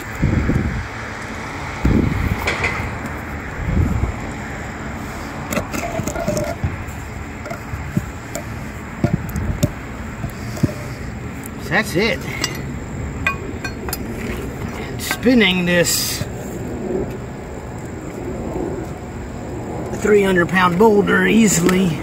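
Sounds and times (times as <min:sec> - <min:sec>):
rushing background noise: 0:00.0 - 0:22.0.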